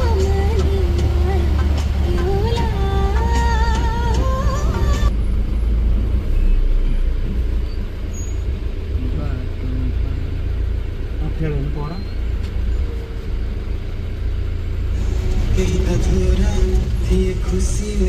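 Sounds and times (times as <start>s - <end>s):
road noise: 0.0s - 18.0s
truck engine rumble: 0.0s - 18.0s.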